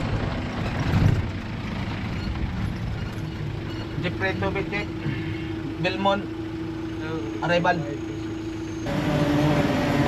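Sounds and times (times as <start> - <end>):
vehicle and road rumble: 0.0 - 10.0.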